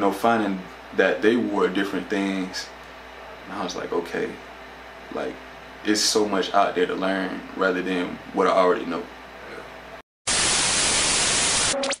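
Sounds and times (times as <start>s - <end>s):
television static hiss: 10.3s - 12.0s
brief electronic tone: 11.1s - 12.0s.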